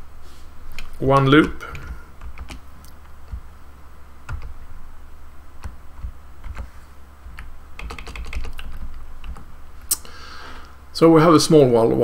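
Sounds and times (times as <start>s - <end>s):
low steady hum: 0.0s - 12.0s
typing on computer keyboard: 0.7s - 3.5s, 4.2s - 4.6s, 5.6s - 6.7s, 7.3s - 9.5s.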